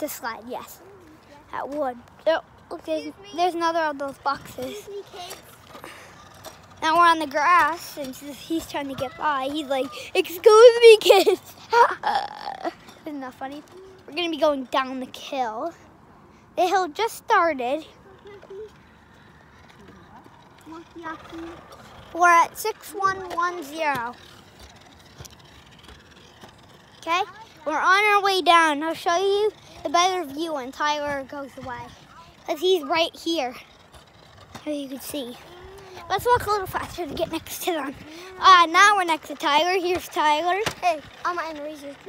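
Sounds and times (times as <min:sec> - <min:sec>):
boy talking loudly: 0:00.0 - 0:05.4, 0:06.8 - 0:15.8, 0:16.6 - 0:18.8, 0:20.6 - 0:24.2, 0:27.0 - 0:33.7, 0:34.6 - 0:42.0
outdoor background noise: 0:00.0 - 0:42.0.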